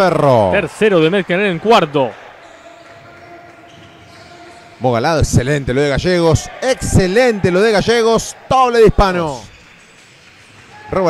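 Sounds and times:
man commentating: 0.0 - 9.5.

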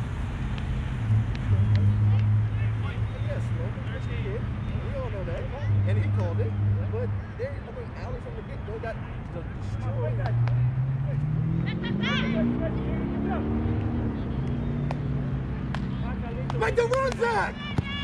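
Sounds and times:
distant shouts of people: 11.5 - 18.0.

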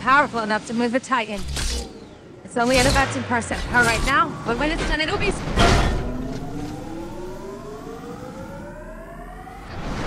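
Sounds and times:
rising electronic whine: 1.4 - 10.0.

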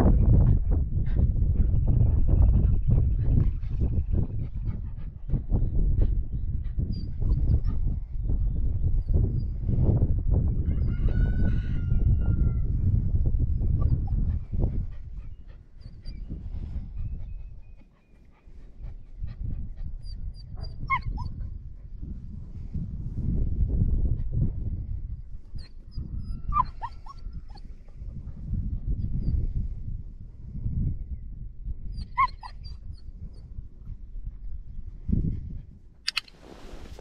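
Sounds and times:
wind buffeting microphone: 0.0 - 37.0
puppy whimpering: 20.0 - 21.3, 25.6 - 27.6, 32.0 - 32.8
puppy whining: 20.0 - 21.3, 25.6 - 27.7, 32.0 - 32.9.

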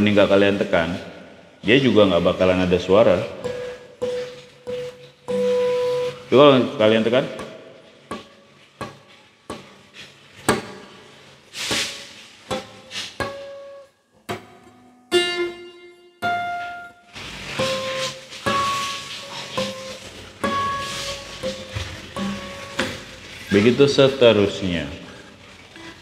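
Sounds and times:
acoustic guitar harmonics: 1.6 - 7.4, 11.6 - 26.0.

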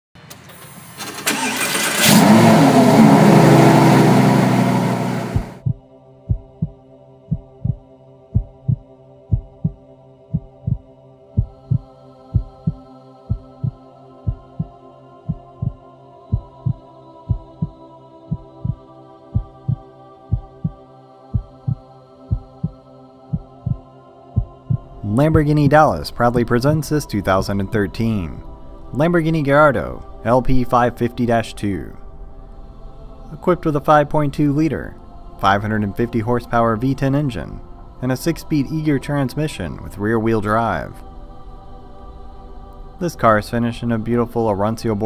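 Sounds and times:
car engine starting and revving: 0.5 - 5.7.

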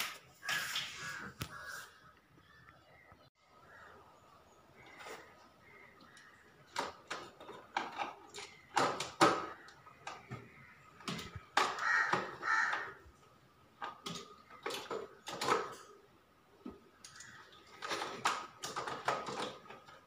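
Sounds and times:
clicks and knocks of circuit breakers: 6.0 - 13.1, 13.7 - 16.0, 16.6 - 20.0.

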